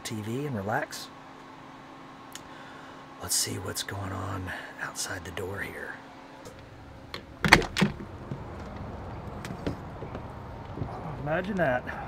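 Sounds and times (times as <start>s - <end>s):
door latch click: 6.5s - 8.2s
latch and door knocks: 6.5s - 10.3s.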